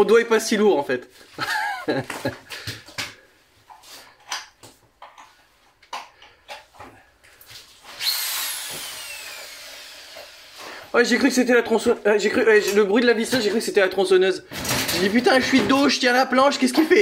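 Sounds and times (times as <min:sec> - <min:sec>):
electric drill whining: 0:07.8 - 0:10.9.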